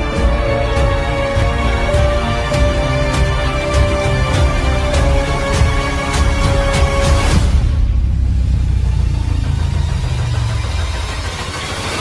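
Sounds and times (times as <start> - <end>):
background music: 0.0 - 12.0
deep bass line: 0.0 - 12.0.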